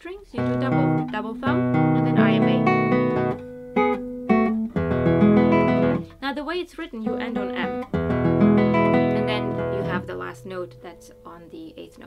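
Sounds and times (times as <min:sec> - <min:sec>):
guitar arpeggio chord ringing: 0:00.4 - 0:06.1, 0:07.0 - 0:11.8.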